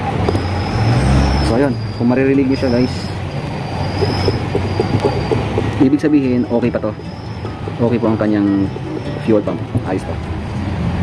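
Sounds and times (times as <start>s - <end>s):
hand fuel pump pulses: 3.5s - 9.4s.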